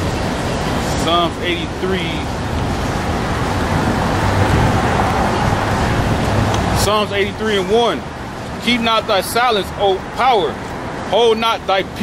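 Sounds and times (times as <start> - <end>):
street traffic noise: 0.0 - 12.0.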